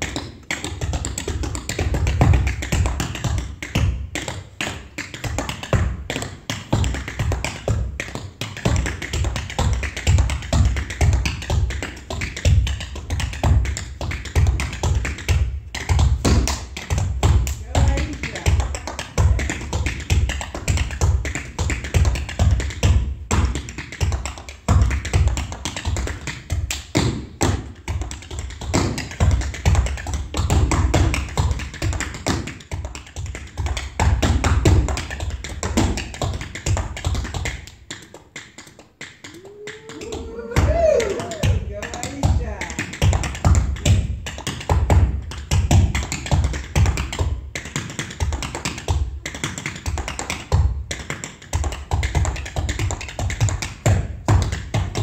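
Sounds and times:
tap shoes on wooden floor: 0:00.0 - 0:55.0.

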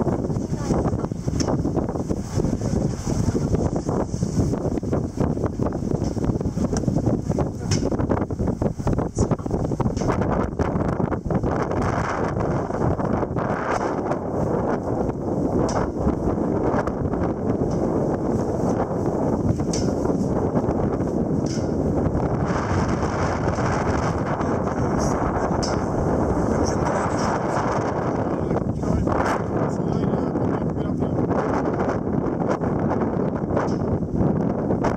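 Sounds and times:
strong wind buffeting microphone: 0:00.0 - 0:34.9.

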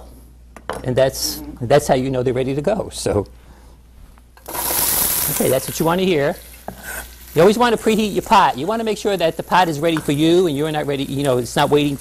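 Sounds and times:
onion sizzling in hot oil: 0:04.4 - 0:12.0.

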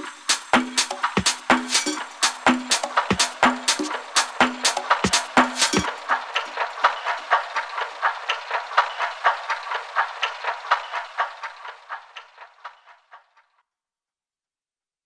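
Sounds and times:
rhythmic clicking: 0:00.0 - 0:13.4.

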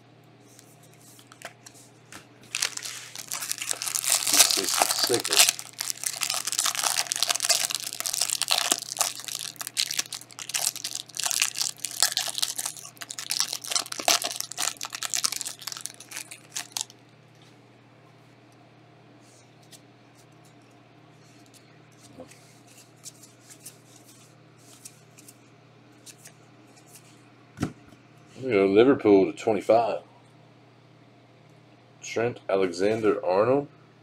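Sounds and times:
plastic wrapper tearing and crinkling: 0:02.4 - 0:16.9.

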